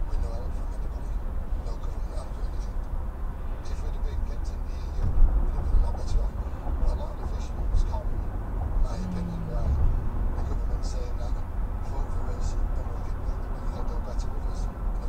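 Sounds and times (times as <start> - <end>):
car engine and road rumble: 0.0 - 15.0
faint talk from car radio: 0.0 - 15.0.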